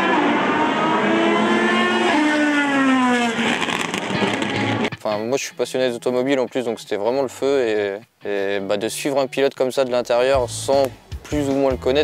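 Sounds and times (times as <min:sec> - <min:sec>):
car engine passing by: 0:00.0 - 0:04.9
racing car engine at high revs: 0:00.0 - 0:04.9.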